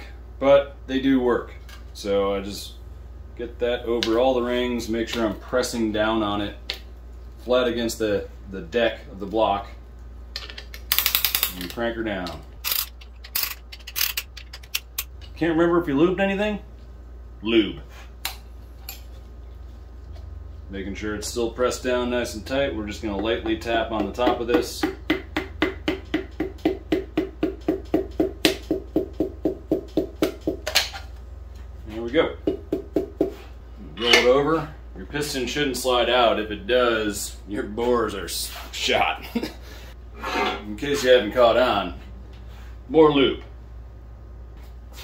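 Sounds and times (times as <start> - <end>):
ratcheting clicks: 12.6 - 15.1.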